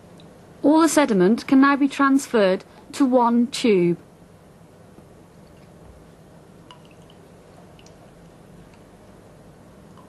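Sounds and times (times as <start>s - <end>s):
steady low hum: 0.0s - 10.0s
liquid dripping into glass: 6.6s - 8.9s.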